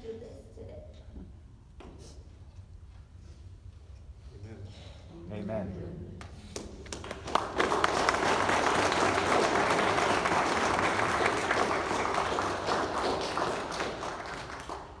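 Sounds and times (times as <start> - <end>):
crowd applauding: 6.6 - 15.0.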